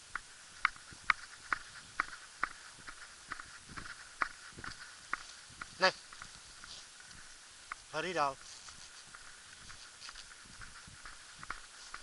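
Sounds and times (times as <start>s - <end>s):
small irregular clicks: 0.0s - 12.0s
footsteps on pavement: 0.2s - 12.0s.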